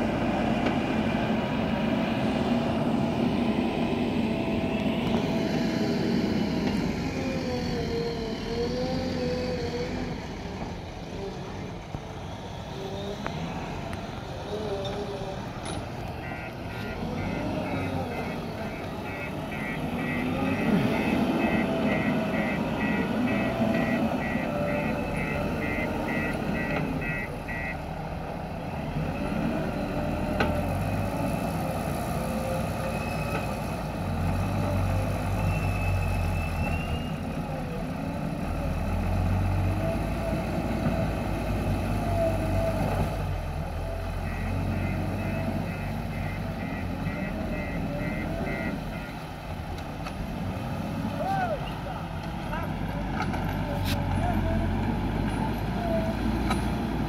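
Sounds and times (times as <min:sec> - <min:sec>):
diesel engines revving: 0:00.0 - 0:57.0
reverse alarm beeping: 0:16.2 - 0:27.8, 0:44.2 - 0:49.2.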